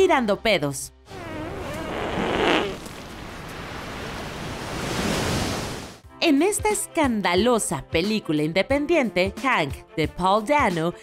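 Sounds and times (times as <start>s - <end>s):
wavering buzzing fart: 1.1s - 3.0s.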